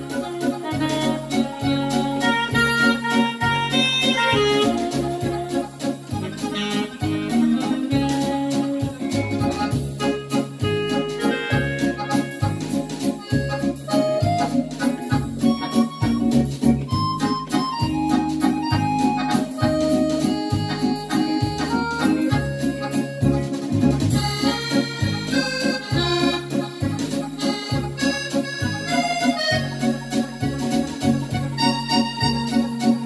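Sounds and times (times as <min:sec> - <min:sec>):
accordion-like keyboard melody: 0:00.0 - 0:33.0
repeating bass accompaniment: 0:00.0 - 0:33.0.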